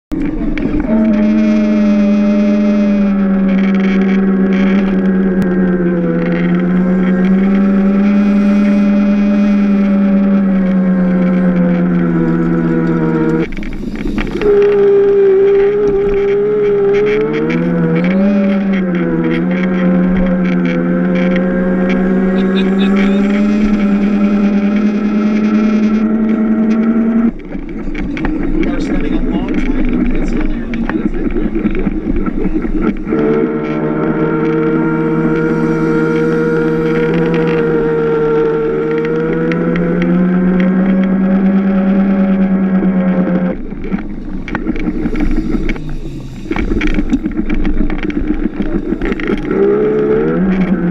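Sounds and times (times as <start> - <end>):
electric motor whining: 0.2 - 50.9.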